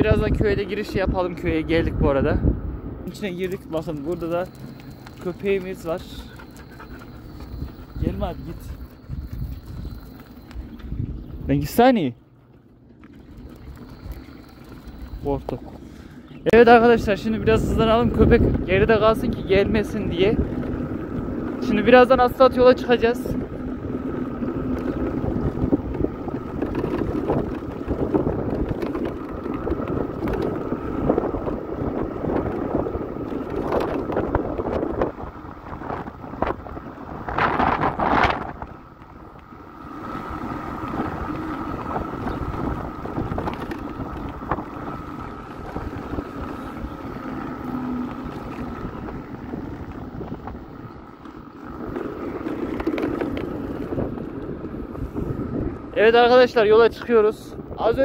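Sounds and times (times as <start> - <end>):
wind buffeting microphone: 0.0 - 58.0
tyres on paving stones: 2.7 - 58.0.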